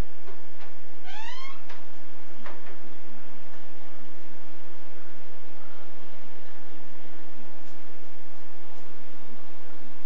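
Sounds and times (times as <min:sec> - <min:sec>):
high-pitched rising call: 0:01.0 - 0:01.6.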